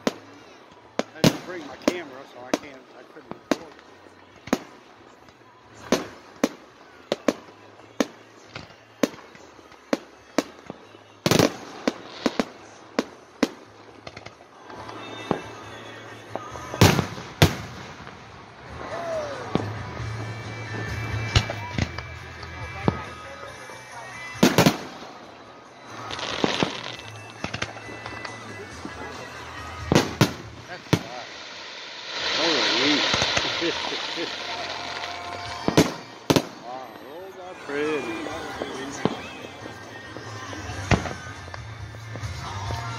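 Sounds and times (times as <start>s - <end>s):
fireworks bangs: 0.0s - 42.9s.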